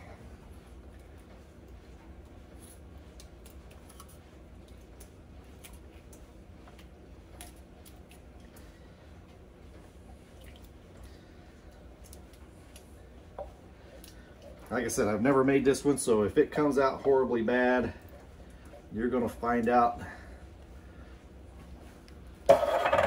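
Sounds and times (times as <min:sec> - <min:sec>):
low steady hum: 0:00.0 - 0:23.0
wet squishing: 0:00.2 - 0:21.5.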